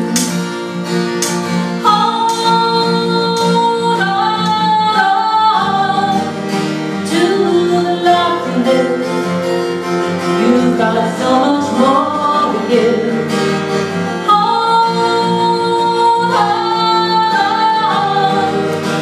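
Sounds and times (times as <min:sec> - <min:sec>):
strummed acoustic guitar: 0:00.0 - 0:19.0
woman singing: 0:01.7 - 0:19.0.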